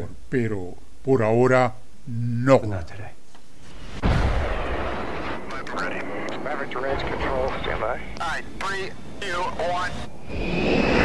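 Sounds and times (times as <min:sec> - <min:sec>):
voices: 0:05.4 - 0:10.2
fighter jet roaring past: 0:09.8 - 0:11.0.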